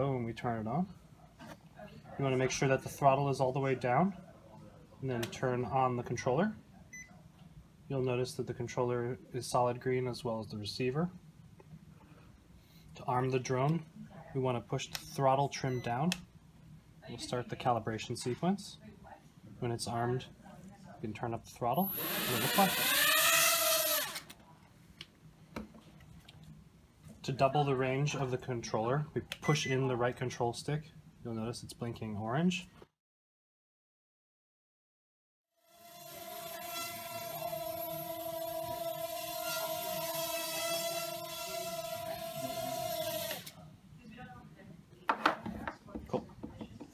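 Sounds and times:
quadcopter motors whining: 21.8s - 24.3s, 35.7s - 43.6s.

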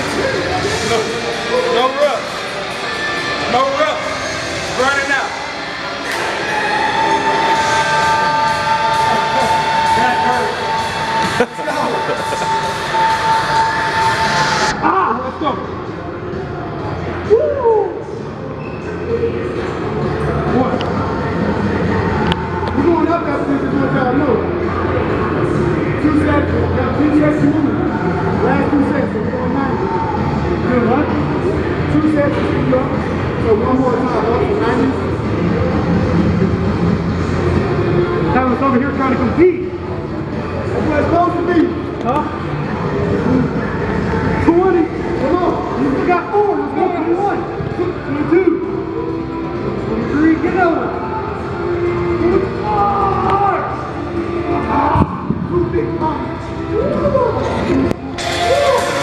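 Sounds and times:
indistinct voices: 0.0s - 59.0s.

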